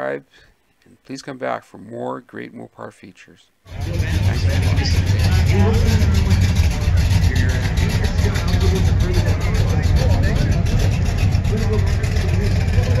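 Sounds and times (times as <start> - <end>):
voices talking: 2.7 - 13.0
car engine deep exhaust note: 3.7 - 13.0.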